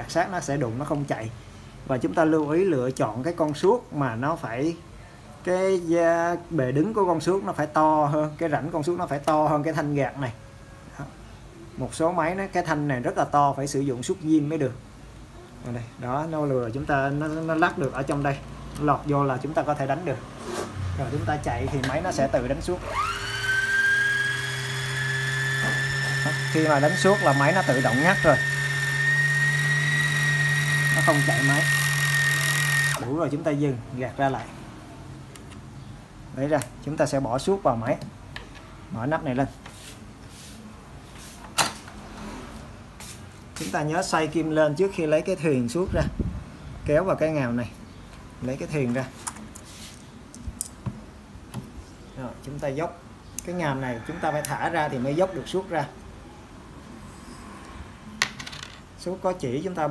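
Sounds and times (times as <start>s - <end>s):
sewing machine whining: 22.8s - 33.1s.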